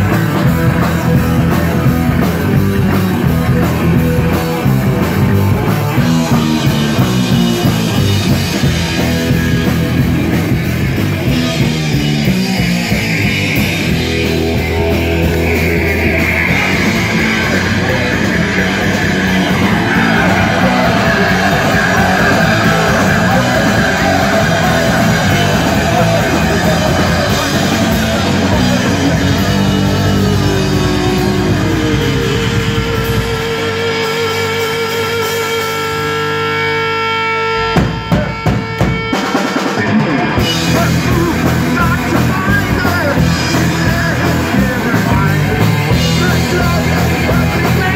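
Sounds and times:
drum kit: 0.0s - 36.2s, 37.6s - 47.9s
bass guitar: 0.0s - 47.9s
electric guitar: 0.0s - 47.9s.

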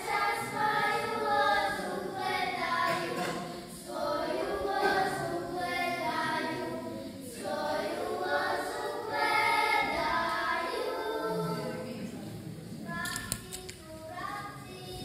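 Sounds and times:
children singing folk song: 0.0s - 15.0s.

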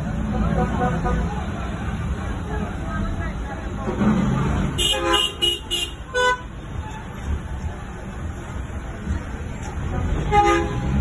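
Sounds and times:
engines rumbling: 0.0s - 11.0s
vehicle horn tooting: 4.8s - 6.5s.

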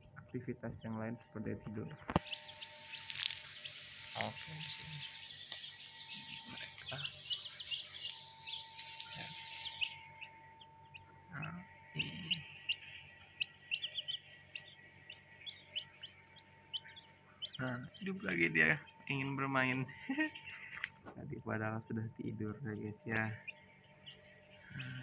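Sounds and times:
faint steady hum: 0.0s - 25.0s
young chicks peeping: 0.0s - 25.0s.

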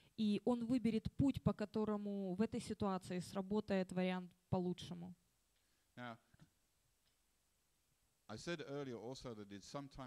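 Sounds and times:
man's voice: 8.3s - 10.0s.

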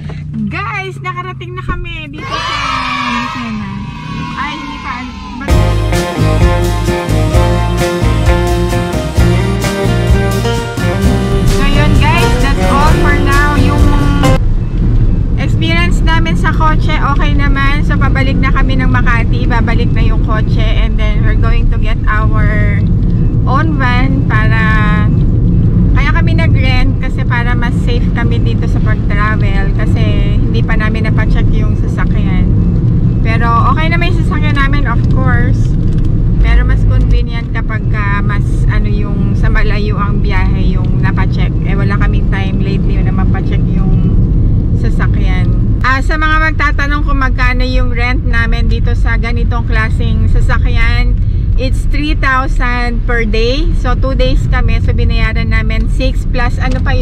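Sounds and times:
woman talking: 0.0s - 5.6s, 11.5s - 14.4s, 15.4s - 22.9s, 23.5s - 25.2s, 25.9s - 32.6s, 33.2s - 35.7s, 36.4s - 44.1s, 44.8s - 57.0s
road and engine rumble in car: 0.0s - 57.0s.

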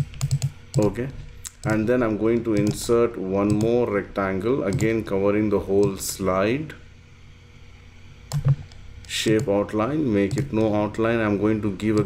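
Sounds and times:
computer mouse clicks: 0.0s - 2.8s, 3.5s - 3.7s, 4.7s - 4.9s, 8.3s - 9.5s, 10.3s - 10.8s.

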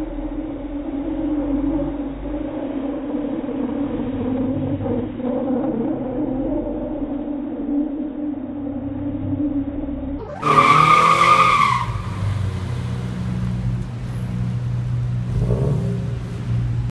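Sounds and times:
car engine revving: 0.0s - 16.9s
tyres squealing: 10.2s - 12.7s.

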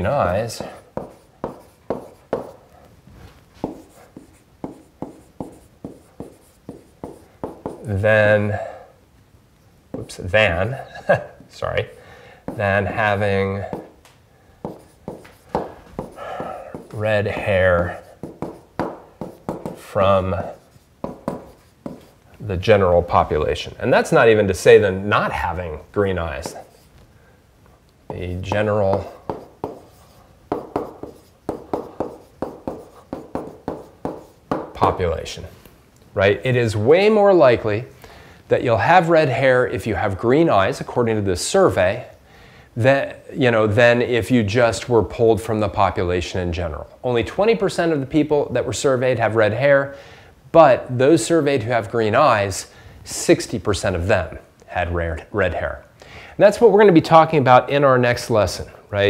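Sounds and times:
stylus tapping on tablet: 3.6s - 7.9s, 14.6s - 17.6s, 18.2s - 19.8s, 21.0s - 22.1s, 28.1s - 29.9s, 30.5s - 35.0s.

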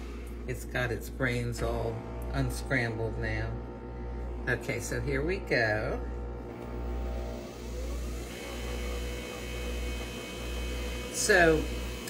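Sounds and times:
coffee machine motor hum: 0.0s - 12.0s.

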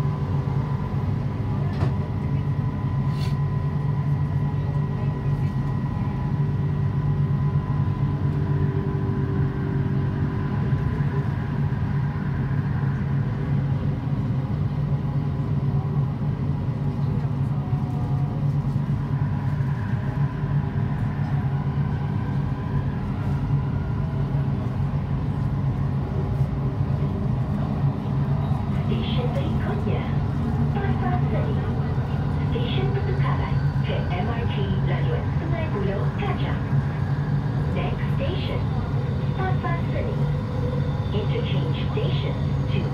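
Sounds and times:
train interior rumble: 0.0s - 42.9s.

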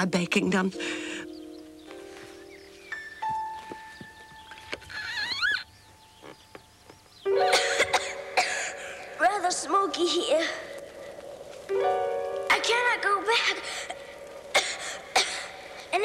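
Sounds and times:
soft background music: 0.0s - 4.9s, 7.2s - 14.5s.

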